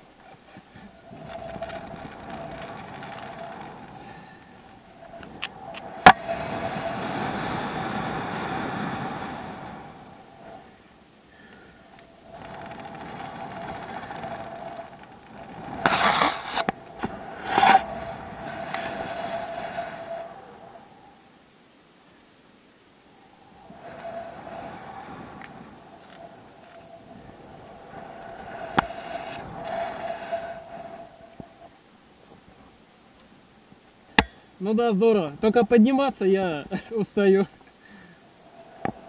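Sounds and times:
wind rushing over microphone: 0.0 - 21.4, 23.0 - 32.9, 34.1 - 39.0
buffets against microphone: 11.4 - 20.7
whistling tone: 23.3 - 31.7.

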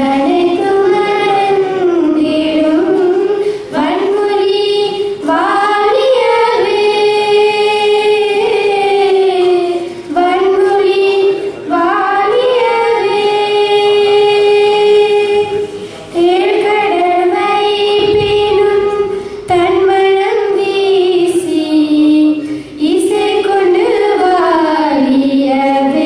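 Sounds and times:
girls singing through a pa: 0.0 - 26.0.

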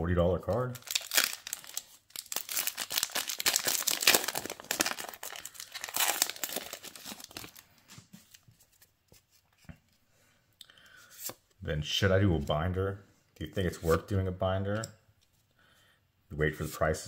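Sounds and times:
foil wrapper crinkling and tearing: 0.8 - 7.6.

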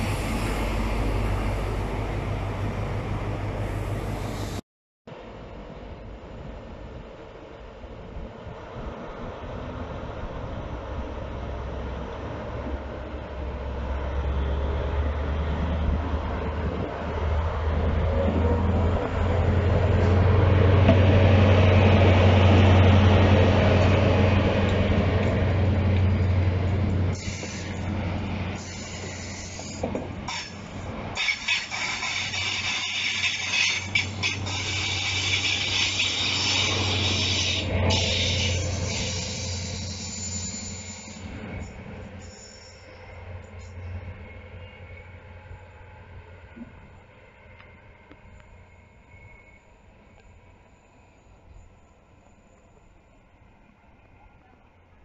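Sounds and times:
diesel train engine passing: 0.0 - 55.0.

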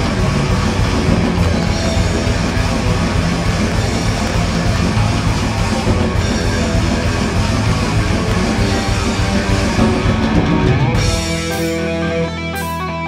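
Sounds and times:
bass guitar: 0.0 - 13.0
drum kit: 0.0 - 13.0
electric guitar: 0.0 - 13.0.

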